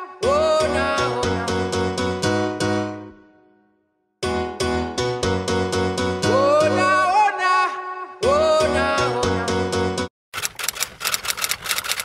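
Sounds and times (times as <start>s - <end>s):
typewriter keys clacking: 10.4s - 12.0s.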